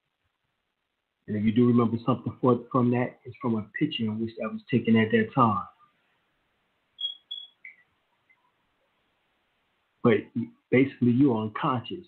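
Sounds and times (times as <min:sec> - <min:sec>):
short high-pitched beeps: 0:07.0 - 0:07.8
falling lower chirp: 0:07.0 - 0:07.9.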